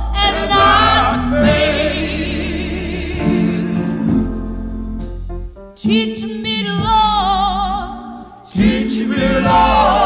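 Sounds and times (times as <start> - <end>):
gospel group singing in harmony: 0.0 - 4.9, 8.1 - 10.0.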